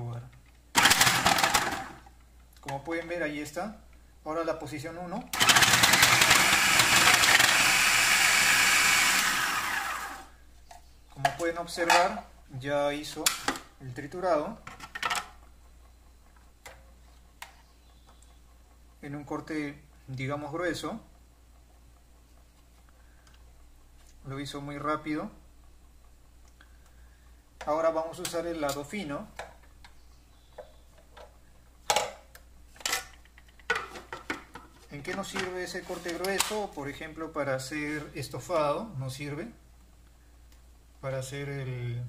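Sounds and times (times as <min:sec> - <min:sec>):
plastic parts clattering: 0:00.8 - 0:02.0.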